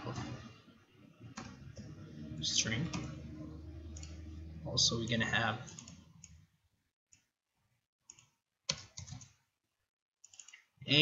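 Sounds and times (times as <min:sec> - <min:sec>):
computer keyboard keystrokes: 0:08.1 - 0:09.3, 0:10.2 - 0:10.6.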